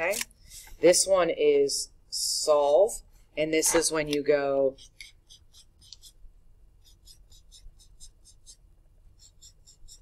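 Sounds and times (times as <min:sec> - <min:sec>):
marker stroking on paper: 0:03.7 - 0:10.0.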